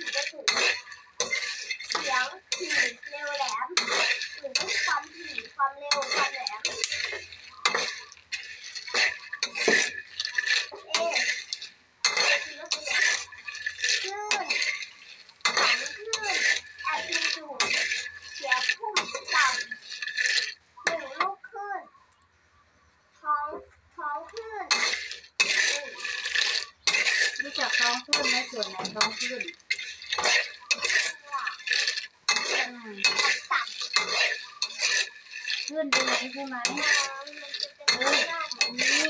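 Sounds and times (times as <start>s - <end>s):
seeds rattling in a metal pan: 0.0s - 21.3s, 24.1s - 39.0s
voices speaking: 0.0s - 39.0s.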